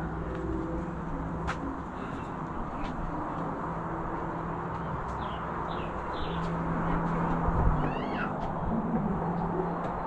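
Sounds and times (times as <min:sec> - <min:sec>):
small birds chirping: 0:04.7 - 0:07.2.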